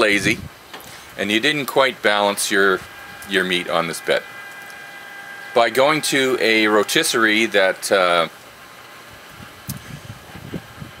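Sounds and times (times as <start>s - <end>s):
wind buffeting microphone: 0.1s - 0.6s, 9.1s - 11.0s.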